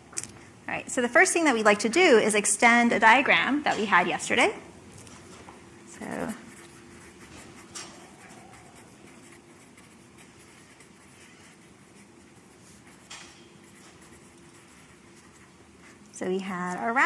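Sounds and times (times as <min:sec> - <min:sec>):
marker scratching on paper: 0:06.0 - 0:17.0.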